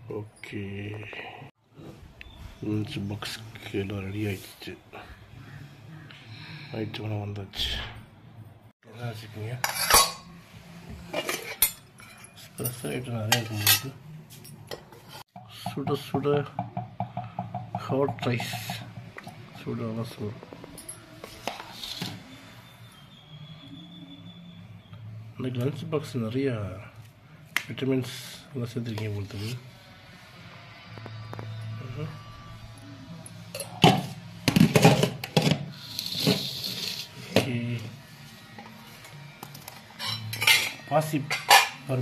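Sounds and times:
steel kitchenware clattering: 9.5 - 10.3, 11.1 - 16.0, 39.9 - 42.0.

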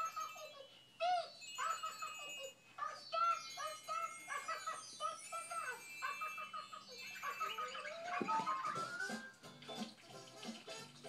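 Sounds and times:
bell-like notes from television: 0.0 - 11.0.

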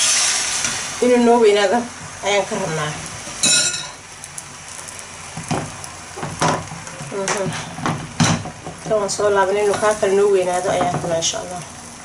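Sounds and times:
egg sizzling in frying pan: 0.0 - 12.0.

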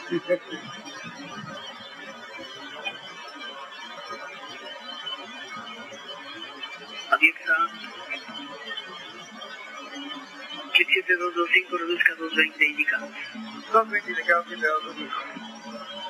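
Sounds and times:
cockpit recording hiss and hum: 0.0 - 1.6, 7.0 - 8.0, 10.7 - 16.0.

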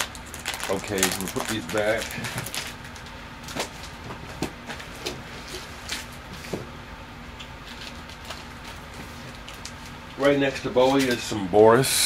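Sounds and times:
furnace hum: 0.0 - 12.0.

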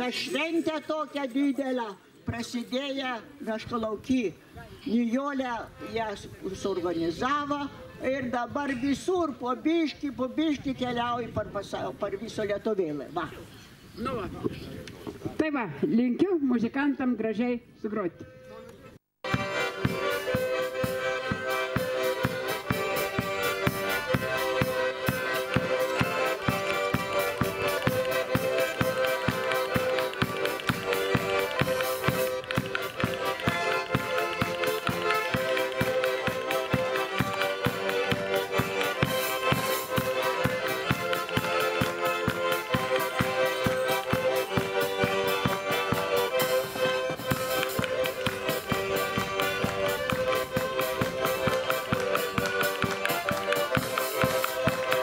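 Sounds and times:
accordions playing a tune: 19.2 - 55.0
drum steady beat: 19.2 - 55.0.

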